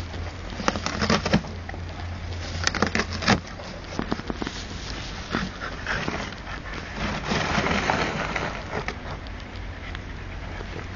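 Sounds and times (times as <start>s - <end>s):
cardboard scraping and rustling: 0.5s - 1.6s, 2.4s - 9.0s
dog noises: 5.1s - 10.9s.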